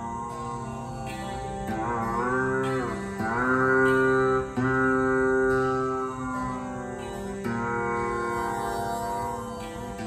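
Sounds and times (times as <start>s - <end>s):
tanpura drone: 0.0s - 10.0s
veena with pitch glides: 0.0s - 10.0s.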